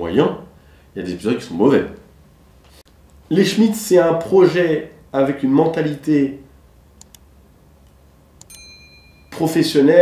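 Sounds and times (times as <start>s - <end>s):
mouse clicks: 7.0s - 7.2s
bright bell ding: 8.5s - 9.8s.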